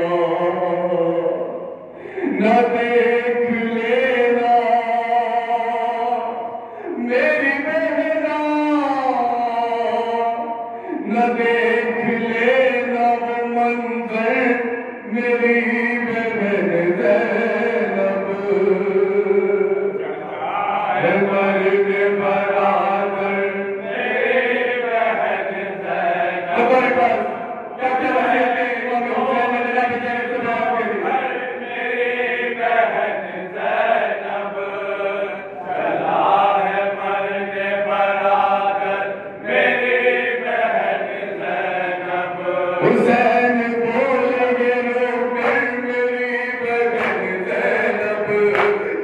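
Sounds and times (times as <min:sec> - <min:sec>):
man chanting unaccompanied: 0:00.0 - 0:49.0.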